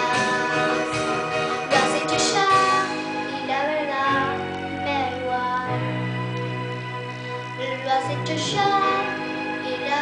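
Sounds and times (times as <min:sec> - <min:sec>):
girl singing a pop ballad: 0:00.0 - 0:06.3, 0:07.1 - 0:10.0.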